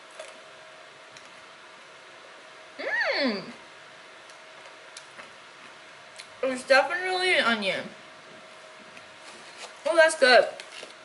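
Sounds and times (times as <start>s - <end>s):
quiet room hiss: 0.0s - 11.0s
chewing clicks: 4.2s - 5.2s.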